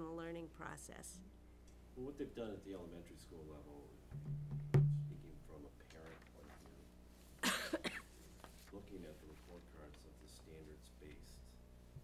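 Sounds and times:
person coughing: 7.4s - 8.2s.

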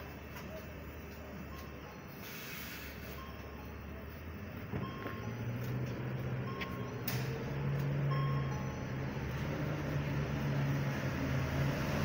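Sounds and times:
bus diesel engine pulling away: 0.0s - 12.0s.

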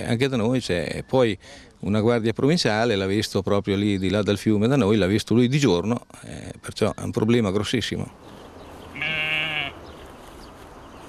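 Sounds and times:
faint background noise: 0.0s - 11.0s
sheep bleating: 8.9s - 9.8s.

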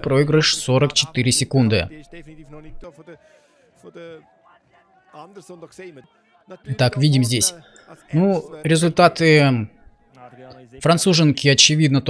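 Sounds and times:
commentary: 0.0s - 12.0s.

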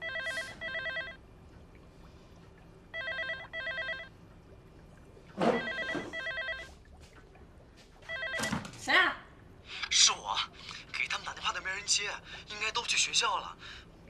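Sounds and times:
telephone ringing electronically: 0.0s - 1.2s, 2.9s - 4.1s, 5.5s - 6.8s, 8.1s - 8.5s.

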